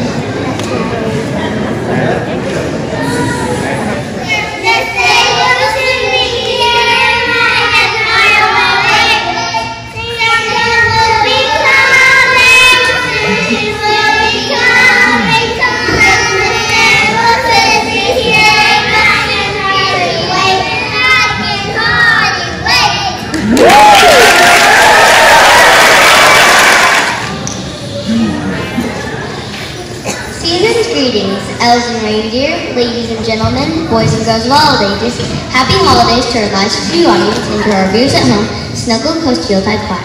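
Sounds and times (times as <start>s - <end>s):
children singing: 4.3s - 22.6s
audience applause and cheering: 23.3s - 27.5s.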